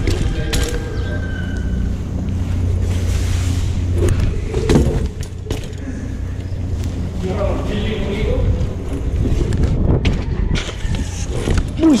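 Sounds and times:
wind rushing over microphone: 0:06.6 - 0:12.0.

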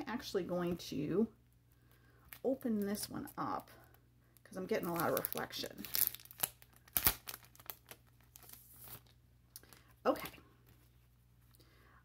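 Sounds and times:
plastic sleeve crinkling: 0:01.8 - 0:11.1.

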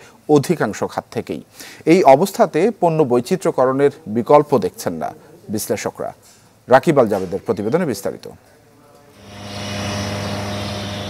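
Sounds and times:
gas flare roaring: 0:09.2 - 0:11.0.

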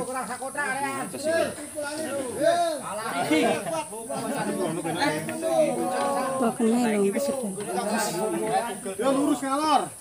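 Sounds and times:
men talking over one another: 0:00.0 - 0:10.0.

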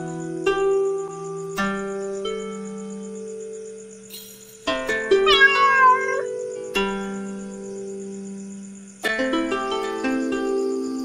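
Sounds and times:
cat meowing: 0:05.2 - 0:06.3
music of held notes: 0:09.0 - 0:11.0.

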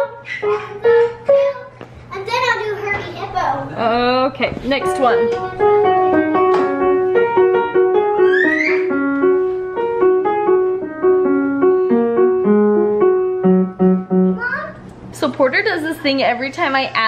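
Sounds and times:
piano playing simple tune: 0:00.0 - 0:01.8, 0:04.7 - 0:14.7.

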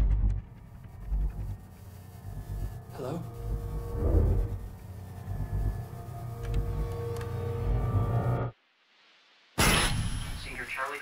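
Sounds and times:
low rumbling drone: 0:00.0 - 0:08.6
sustained tones: 0:00.4 - 0:08.5.

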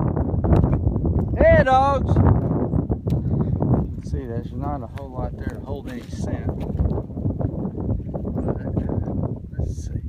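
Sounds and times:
wind rumbling on microphone: 0:00.0 - 0:10.0
footsteps in dry grass: 0:02.2 - 0:08.4.

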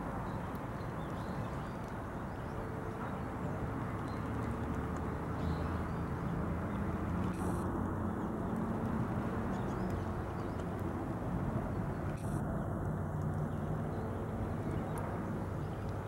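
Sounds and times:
distant traffic rumble: 0:00.0 - 0:16.0.

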